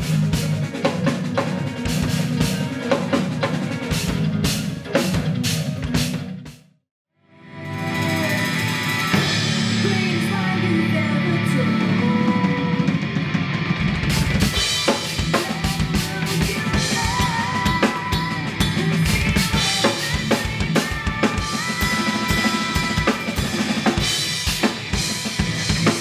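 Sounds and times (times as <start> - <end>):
acoustic drum kit: 0.0 - 6.6, 7.8 - 11.1, 12.2 - 26.0
backing track music: 0.0 - 6.6, 7.4 - 26.0.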